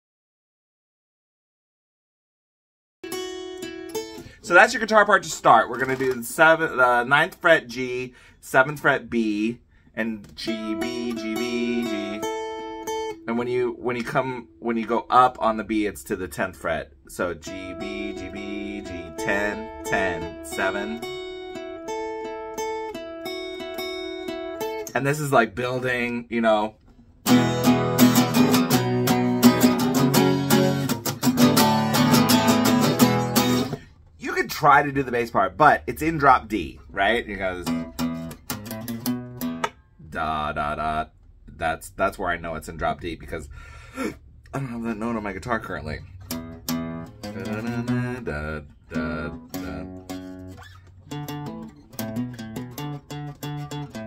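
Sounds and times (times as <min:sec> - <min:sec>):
acoustic guitar strumming: 0:03.0 - 0:07.9, 0:10.0 - 0:15.6, 0:17.2 - 0:25.0, 0:27.2 - 0:34.0, 0:37.0 - 0:40.9, 0:44.0 - 0:54.0.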